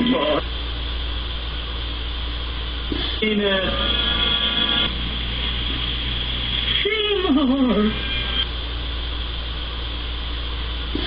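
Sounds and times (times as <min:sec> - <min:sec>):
low hum: 0:00.0 - 0:11.0
steady hiss: 0:00.0 - 0:11.0.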